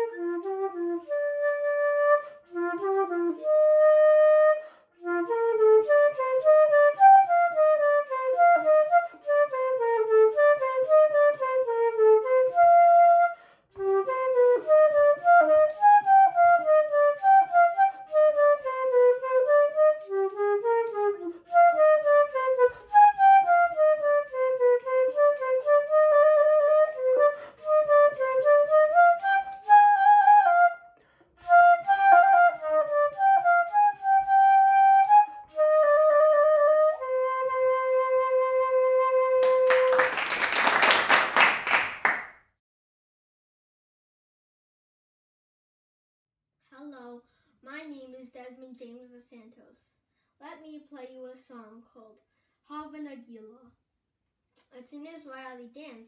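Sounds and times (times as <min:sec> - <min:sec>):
flute playing fast runs: 0:31.5 - 0:42.2.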